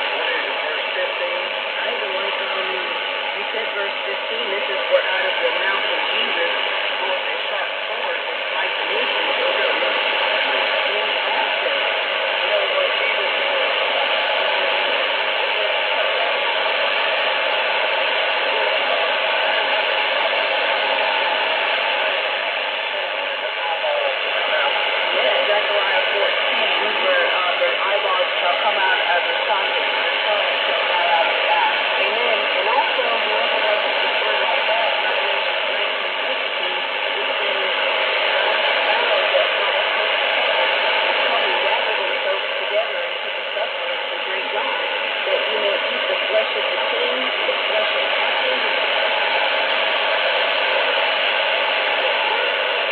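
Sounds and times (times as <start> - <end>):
faint radio speech: 0.0 - 52.9
radio hiss and static: 0.0 - 52.9.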